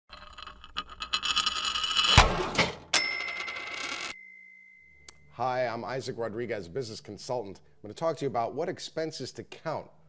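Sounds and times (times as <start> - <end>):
bright bell-like tone: 3.0 - 5.4.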